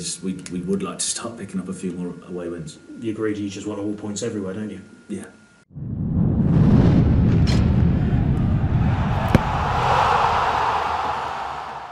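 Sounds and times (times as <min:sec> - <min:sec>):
low rumble: 0:05.7 - 0:10.3.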